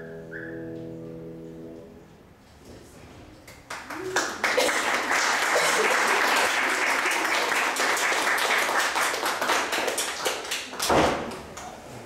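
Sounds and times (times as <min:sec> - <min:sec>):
audience applauding: 0:03.6 - 0:11.7.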